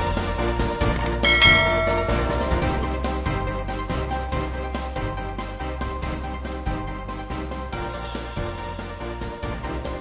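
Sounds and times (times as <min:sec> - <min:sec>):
background music: 0:00.0 - 0:10.0
bright bell chime: 0:01.0 - 0:03.2.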